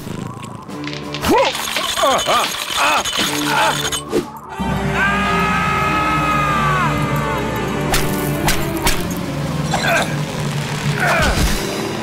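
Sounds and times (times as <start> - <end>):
dramatic background music: 0.0 - 12.0
cartoon ice cracking and shattering: 0.2 - 4.0.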